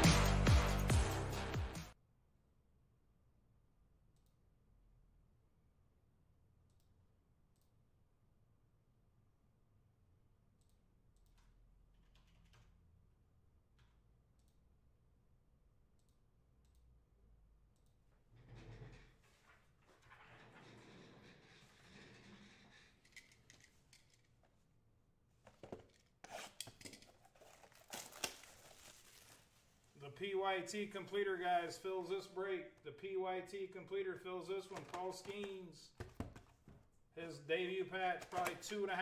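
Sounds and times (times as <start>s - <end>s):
crinkling rustles: 25.5s - 30.0s.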